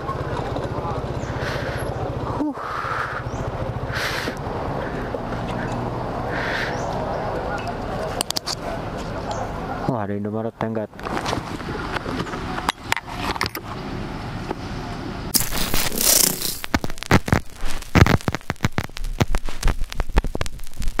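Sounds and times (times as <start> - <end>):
outdoor background noise: 0.0 - 21.0
scattered clicks: 15.3 - 21.0
static hiss: 15.3 - 21.0
digital glitch stutters and thumps: 15.4 - 21.0.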